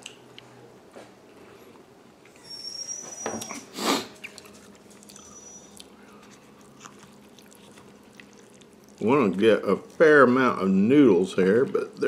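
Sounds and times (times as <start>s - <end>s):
faint high squeaks: 2.4s - 4.4s
chewing: 3.4s - 12.0s.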